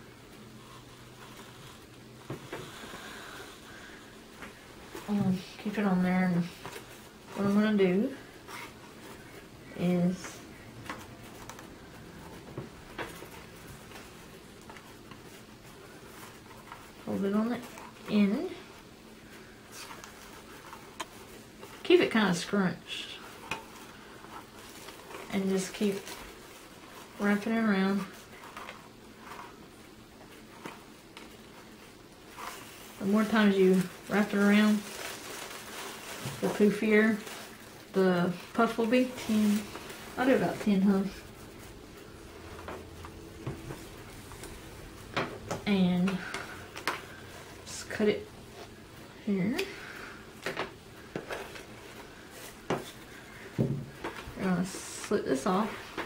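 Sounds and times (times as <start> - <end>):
soft rustling of netting: 0.0 - 56.0.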